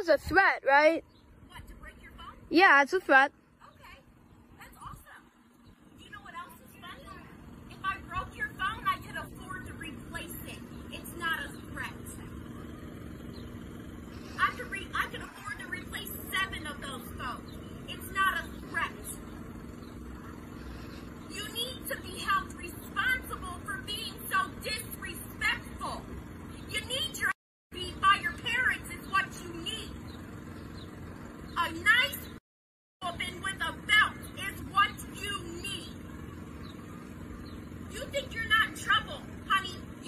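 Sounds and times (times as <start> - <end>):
woman speaking: 0.0 - 4.0, 4.6 - 5.2, 6.0 - 12.2, 14.4 - 19.2, 21.3 - 26.0, 26.7 - 29.9, 31.6 - 32.3, 33.0 - 35.9, 37.9 - 39.9
car engine idling: 1.0 - 32.4, 33.0 - 40.0
person talking: 2.5 - 3.3.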